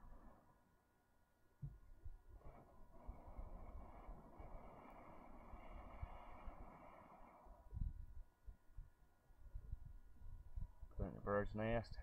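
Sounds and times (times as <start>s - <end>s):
person blowing steady breath: 0.0s - 0.6s, 2.4s - 8.1s.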